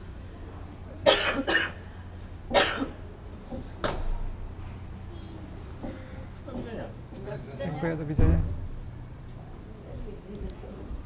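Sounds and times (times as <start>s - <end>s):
steady low hum: 0.0s - 11.0s
person coughing: 1.0s - 1.8s, 2.5s - 3.0s.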